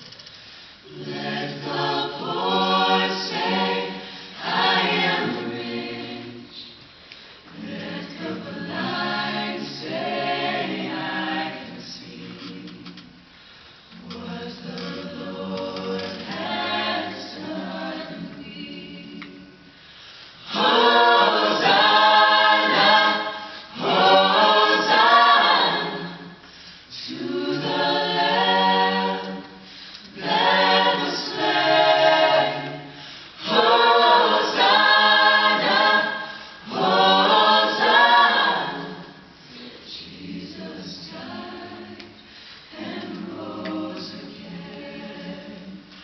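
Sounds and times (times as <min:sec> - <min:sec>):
mixed choir singing a cappella: 0:00.8 - 0:46.0.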